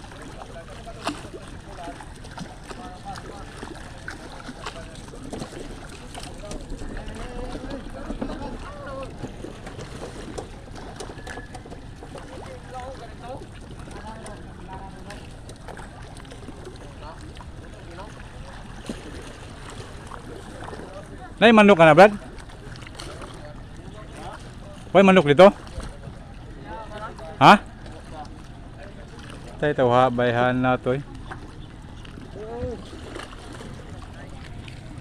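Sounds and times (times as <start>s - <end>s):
people talking indistinctly: 12.2s - 33.0s.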